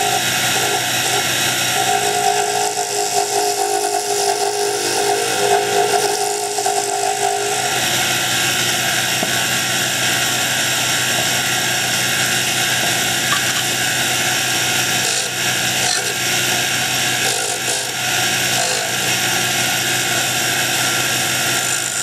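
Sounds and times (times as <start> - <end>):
sandpaper hissing on spinning wood: 0.0 - 22.0
wood lathe running: 0.0 - 22.0.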